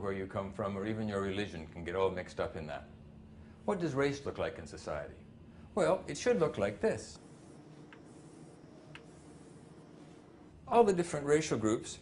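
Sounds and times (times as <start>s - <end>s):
chalk scratching on chalkboard: 7.2s - 10.4s.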